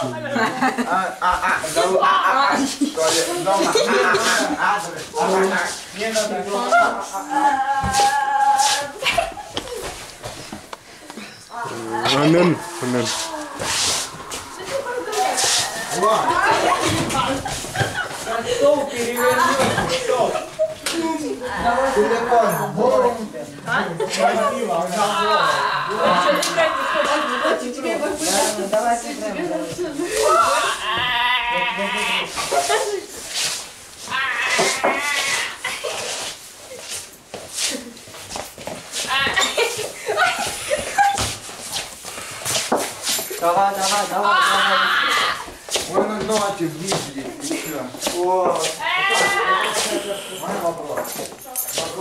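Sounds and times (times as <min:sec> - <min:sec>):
wordless vocal sounds: 0:11.6 - 0:16.8.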